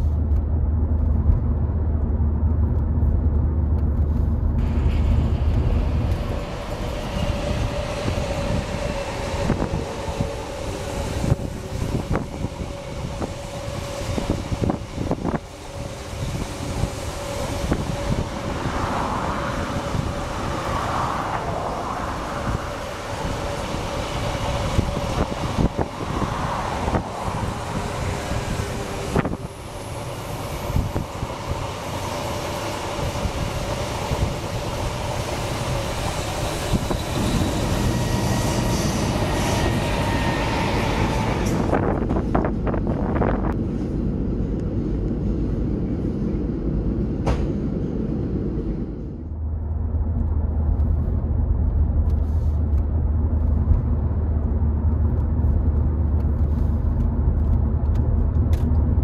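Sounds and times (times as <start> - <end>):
constant whine: 0.0 - 59.0
train rumbling on rails: 0.0 - 59.0.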